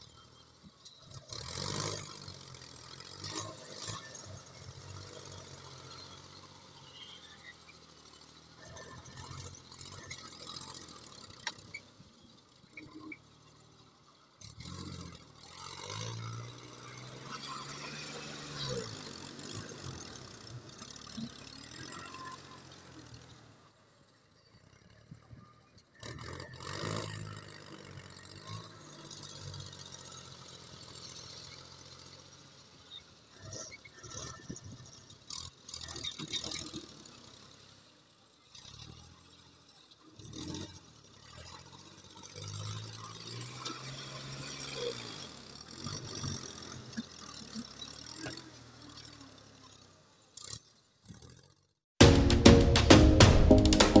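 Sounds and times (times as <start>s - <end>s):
tractor engine revving: 0.0s - 12.0s, 14.4s - 23.6s, 24.6s - 32.7s.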